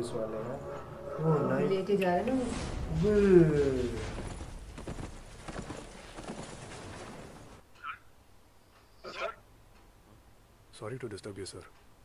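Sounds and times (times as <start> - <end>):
horse galloping hoofbeats: 3.6 - 7.6.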